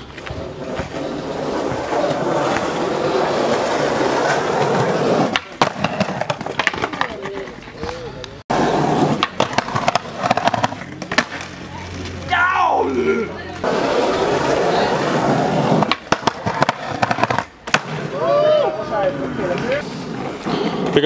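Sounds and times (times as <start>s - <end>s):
skateboard wheels rolling on concrete: 0.0s - 21.0s.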